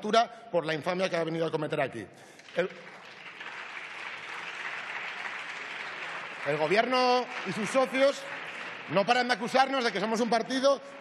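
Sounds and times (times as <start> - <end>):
applause: 2.2 - 11.0.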